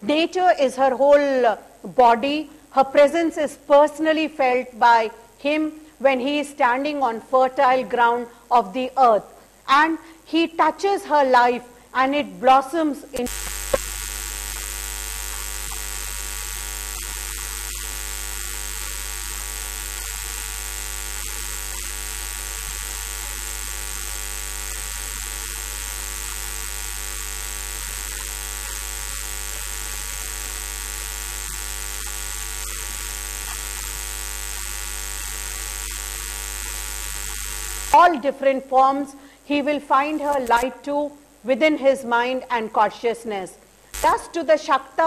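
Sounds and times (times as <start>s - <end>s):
buzzy electrical mains hum: 0.0s - 45.0s.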